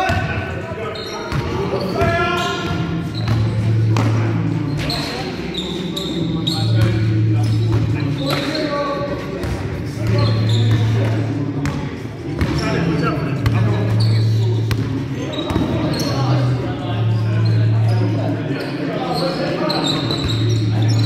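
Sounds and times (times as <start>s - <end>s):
sneakers squeaking: 0.0s - 21.0s
players calling out: 12.5s - 21.0s.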